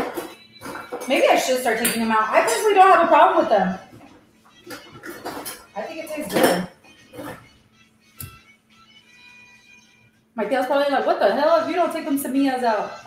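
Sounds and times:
metal utensils clinking on pots: 0.0s - 7.5s.

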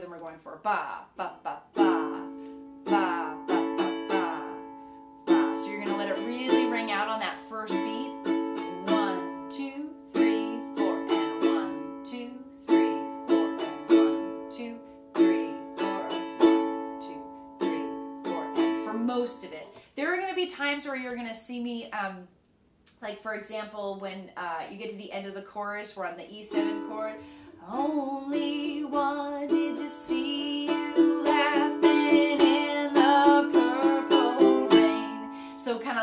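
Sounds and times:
ukulele strumming: 1.5s - 19.6s, 26.5s - 36.0s.

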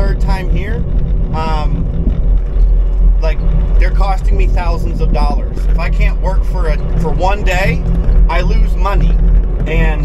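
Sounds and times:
man's voice: 0.0s - 0.8s, 1.4s - 1.8s, 3.2s - 10.0s
engine idling low rumble: 0.0s - 10.0s.

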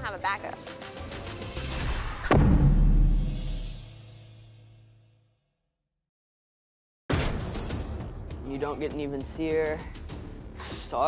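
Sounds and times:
deep drum hit: 2.3s - 4.1s.

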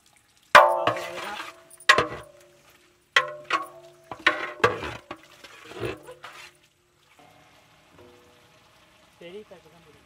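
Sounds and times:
pot of vegetables sizzling: 0.0s - 10.0s.

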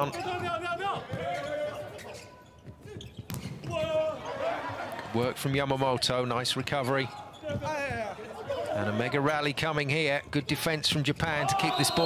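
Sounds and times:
shoes squealing on court floor: 0.0s - 4.4s, 6.6s - 8.1s
players shouting: 3.6s - 5.2s, 11.2s - 12.0s.

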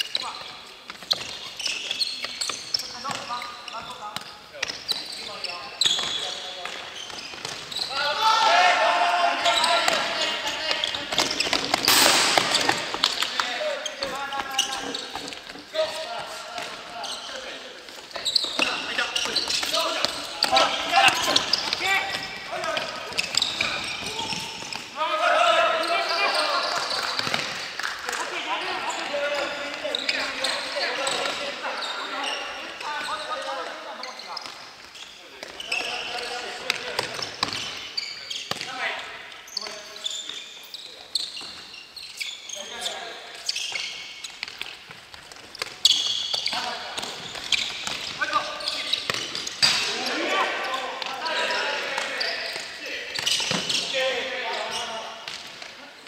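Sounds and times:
players calling and shouting: 0.0s - 56.0s.

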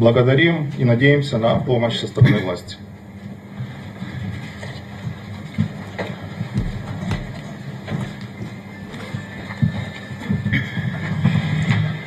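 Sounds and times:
low room noise rumble: 0.0s - 12.0s
knocks and bumps: 6.6s - 8.2s.

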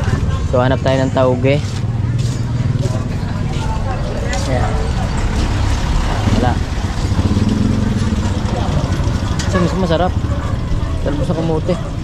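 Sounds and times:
street traffic: 0.0s - 12.0s
motorcycle engine running: 4.6s - 12.0s.

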